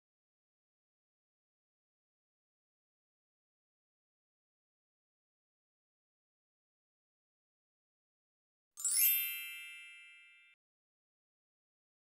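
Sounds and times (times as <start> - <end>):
sparkling chime sound effect: 8.8 - 10.6.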